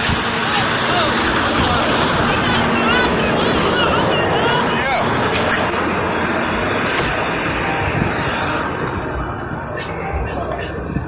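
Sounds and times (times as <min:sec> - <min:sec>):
moving bus rumble: 0:00.0 - 0:11.0.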